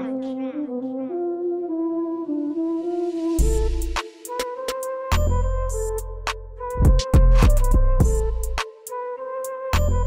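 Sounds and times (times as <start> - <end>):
flute lead holding long notes: 1.3 - 10.0
rap beat with drums and bass: 3.4 - 9.0, 9.7 - 10.0.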